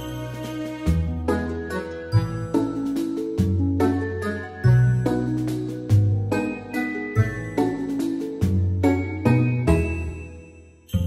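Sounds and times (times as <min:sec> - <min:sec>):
instrumental music with struck notes: 0:00.0 - 0:11.0.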